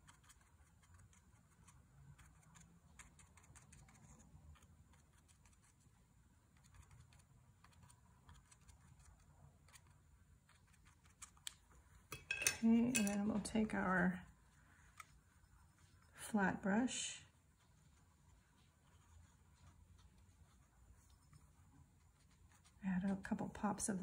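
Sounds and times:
brush dabbing on paper: 0.0 - 12.1, 13.3 - 24.0.

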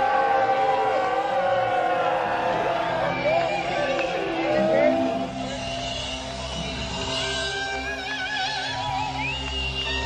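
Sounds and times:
live rock music with held notes: 1.7 - 10.0.

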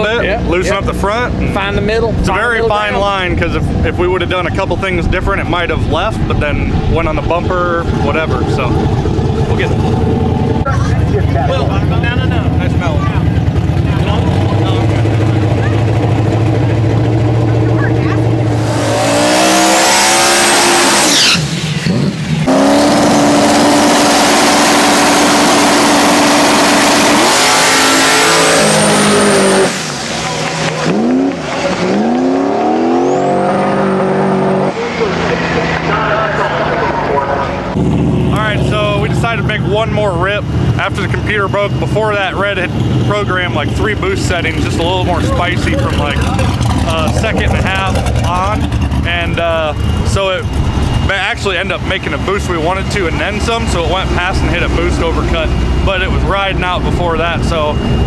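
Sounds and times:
car engine revving: 0.0 - 58.0
high whistle of turbo: 20.8 - 21.9, 54.8 - 58.0.

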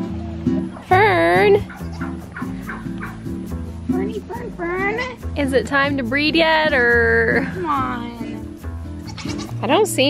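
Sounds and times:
plucked acoustic guitar music: 0.0 - 10.0.

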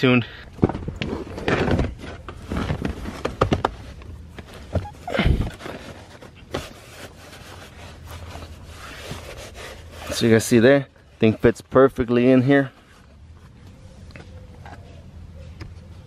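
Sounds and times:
car mat rubbing and shuffling: 1.1 - 10.6.

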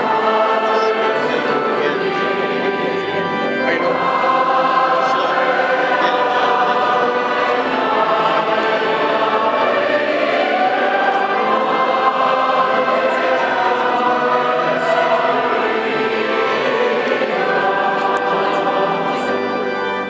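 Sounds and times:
congregation and choir singing a hymn: 0.0 - 20.0.

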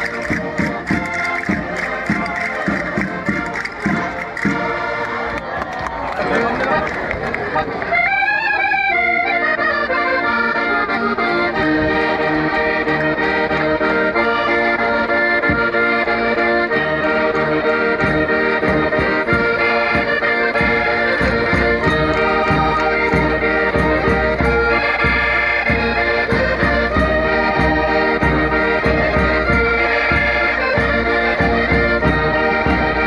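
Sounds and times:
button accordions playing folk tune: 0.0 - 5.6, 6.4 - 33.0
crowd noise: 0.0 - 33.0.

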